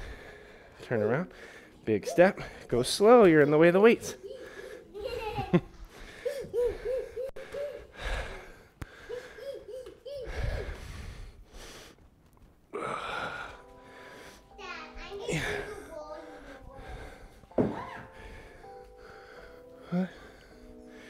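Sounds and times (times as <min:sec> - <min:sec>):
wheezy breathing: 0:00.0 - 0:02.7, 0:04.1 - 0:05.2, 0:05.8 - 0:12.1, 0:15.3 - 0:21.0.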